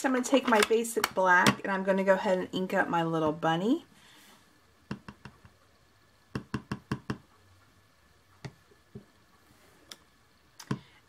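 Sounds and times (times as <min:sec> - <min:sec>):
stamp knocking on cardstock: 0:06.4 - 0:07.2.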